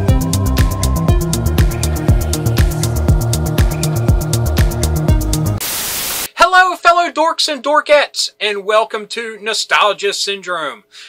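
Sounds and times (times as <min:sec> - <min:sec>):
electronic dance music: 0:00.0 - 0:06.3
static hiss: 0:05.4 - 0:06.4
man speaking: 0:06.4 - 0:10.9.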